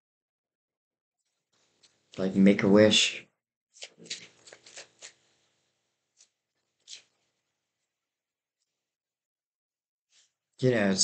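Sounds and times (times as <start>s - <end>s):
cards rustling and snapping: 3.8s - 5.5s, 6.1s - 7.4s.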